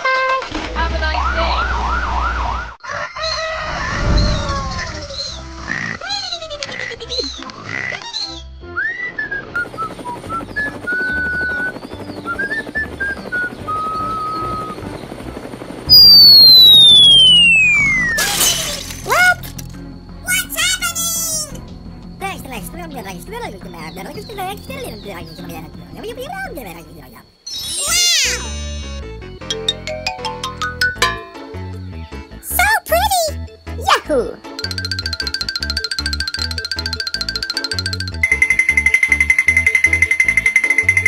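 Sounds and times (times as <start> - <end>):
siren-like warble: 0.9 - 5.0, 15.9 - 18.2
whistled tune: 8.6 - 14.9, 15.9 - 18.3, 34.6 - 41.0
cartoon falling whistle: 15.9 - 18.7, 27.4 - 29.0
light background music: 19.0 - 27.3, 27.9 - 41.0.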